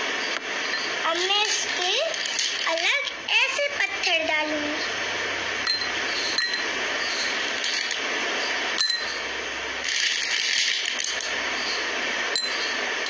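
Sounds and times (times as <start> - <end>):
steady hiss: 0.0 - 13.0.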